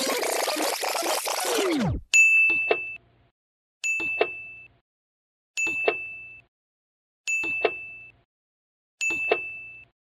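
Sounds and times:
bell-like ding: 9.0s - 9.9s.

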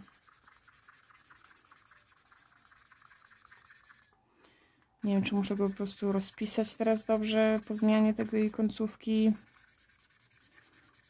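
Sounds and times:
marker scribbling on paper: 0.0s - 4.1s, 5.0s - 11.0s.

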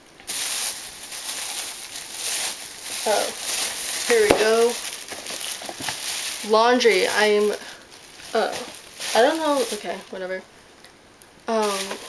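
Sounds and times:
plastic bag rustling: 0.2s - 10.5s, 11.4s - 12.0s.

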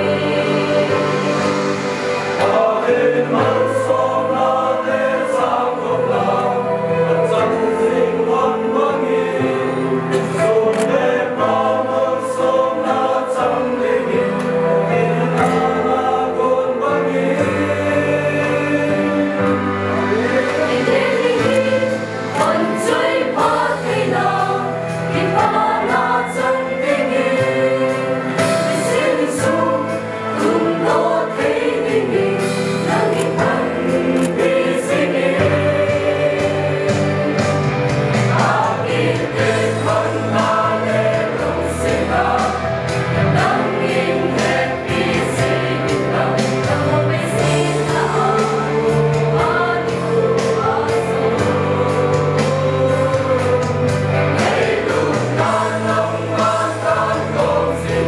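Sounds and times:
mixed choir singing a hymn: 0.0s - 58.0s.

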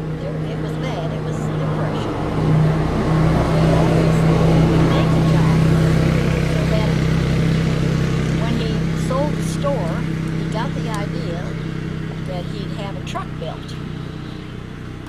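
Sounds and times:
low motor drone: 0.0s - 15.0s.

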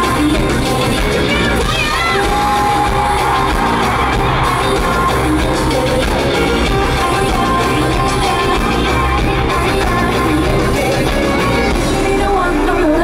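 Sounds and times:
live pop-rock band music: 0.0s - 13.0s.

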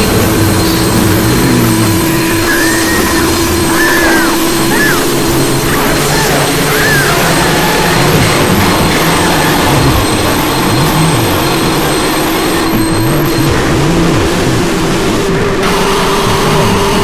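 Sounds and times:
low tones rising and falling: 0.0s - 15.6s
steady high tones: 0.0s - 16.1s
dense wall of mixed noise: 0.0s - 17.0s.

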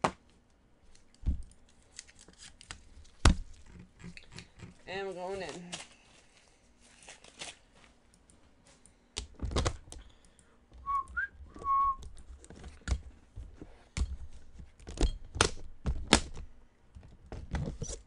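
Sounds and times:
trading cards handled: 0.8s - 8.0s
person whistling a tune: 10.8s - 12.0s.

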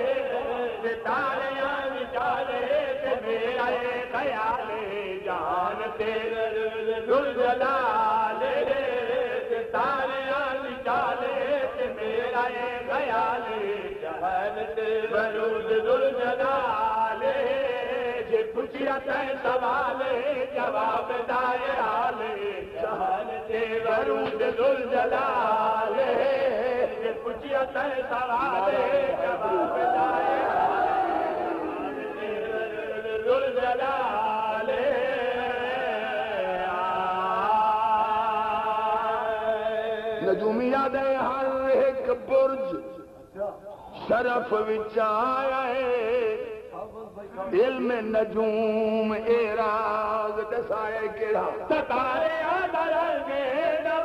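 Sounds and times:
man chanting a lament: 0.0s - 54.0s.

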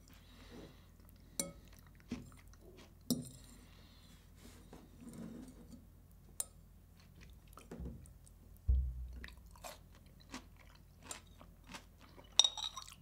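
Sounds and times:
man chewing food: 0.9s - 3.1s, 6.9s - 8.4s, 9.0s - 13.0s
dull low thump: 8.7s - 9.6s.

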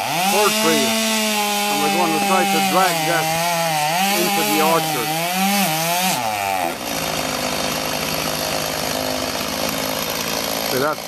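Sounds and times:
chainsaw cutting wood: 0.0s - 11.0s.

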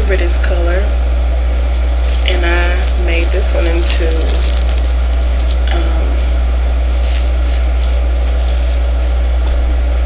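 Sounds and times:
low hum with hiss: 0.0s - 10.0s
fabric rustling: 2.0s - 9.8s.

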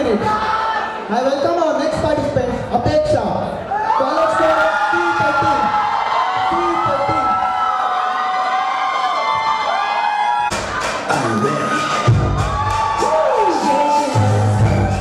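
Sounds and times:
audience cheering and shouting: 0.0s - 1.2s, 3.6s - 15.0s
dance track with bass beat: 10.5s - 13.2s.

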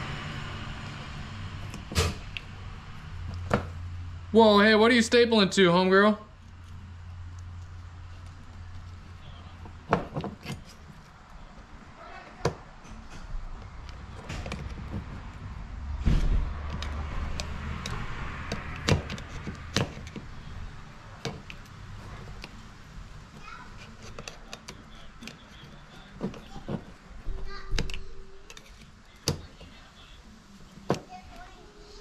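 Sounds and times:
screwdriver clicks and taps: 16.7s - 20.3s.

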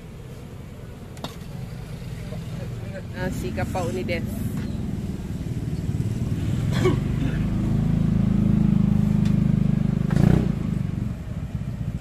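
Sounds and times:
outdoor market low rumble: 0.0s - 12.0s.

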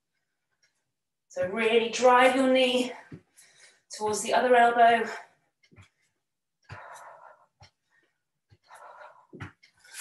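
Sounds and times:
woman breathing hard: 6.6s - 10.0s.

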